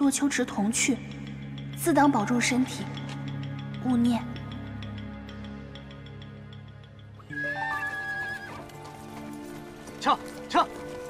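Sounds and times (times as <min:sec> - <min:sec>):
horse neighing: 0:07.2 - 0:09.1
hooves clip-clopping: 0:07.2 - 0:11.0.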